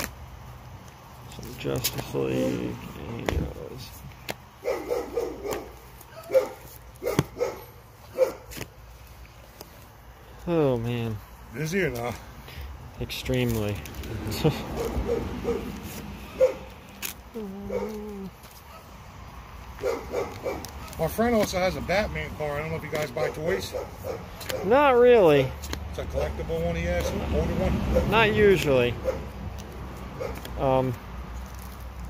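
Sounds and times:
dog barking: 4.6 - 8.6, 14.8 - 15.7, 16.3 - 16.7, 17.7 - 18.0, 19.8 - 21.0, 23.2 - 24.8, 27.9 - 28.2, 29.0 - 29.3, 30.2 - 30.4.

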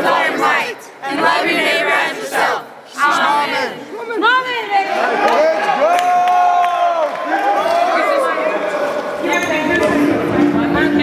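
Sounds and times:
young people shouting and whooping: 3.1 - 9.0.

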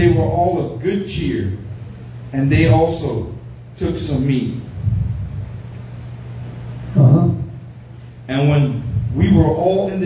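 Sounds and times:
steady low hum: 0.0 - 10.0
man speaking: 6.9 - 7.6, 8.3 - 10.0.

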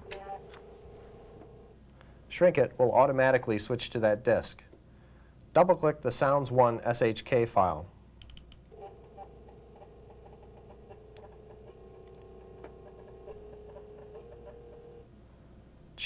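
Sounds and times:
floppy drive motor whine: 0.0 - 1.8, 8.7 - 15.1.

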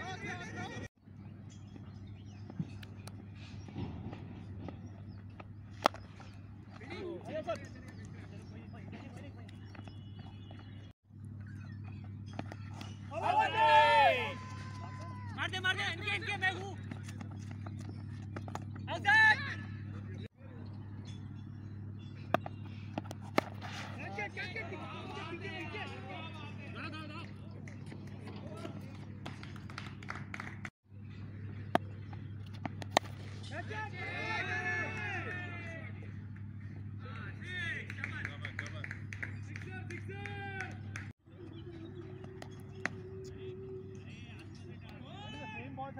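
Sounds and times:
steady low hum: 0.6 - 45.2
people shouting and calling out: 13.1 - 16.8, 33.5 - 36.0
sharp claps: 29.2 - 30.7, 37.8 - 41.1.

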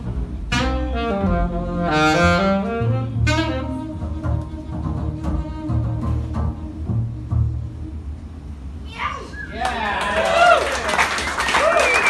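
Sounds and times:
low double bass notes: 0.0 - 8.8
saxophone note: 0.5 - 8.1.

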